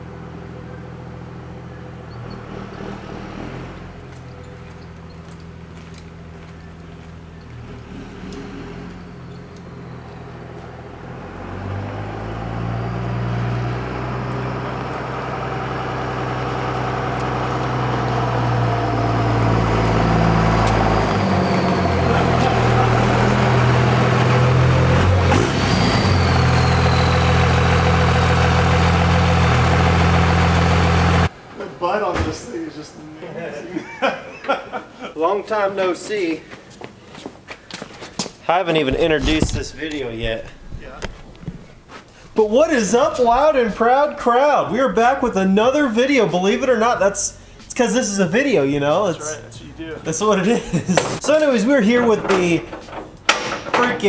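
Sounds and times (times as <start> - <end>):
diesel truck engine running: 0.0 - 31.3.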